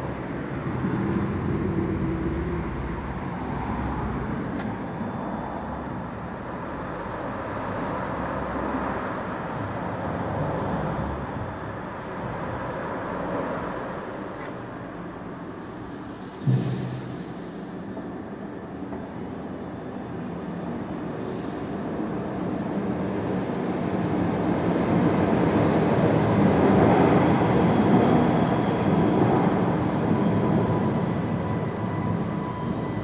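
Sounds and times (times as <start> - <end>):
rumble of passing train: 0.0 - 33.0
low thump: 16.4 - 17.3.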